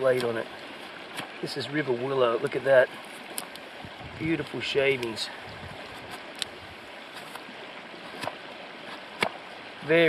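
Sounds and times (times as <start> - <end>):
shallow river rushing: 0.0 - 10.0.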